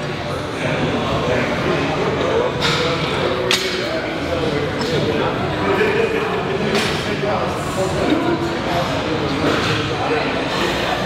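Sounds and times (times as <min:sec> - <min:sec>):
continuous background noise: 0:00.0 - 0:11.0.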